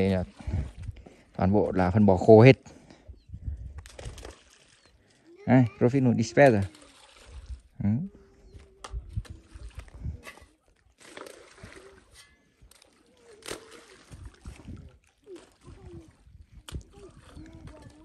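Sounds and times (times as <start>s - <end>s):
dung splashing into water: 3.8s - 5.0s, 6.4s - 7.7s, 10.8s - 18.0s.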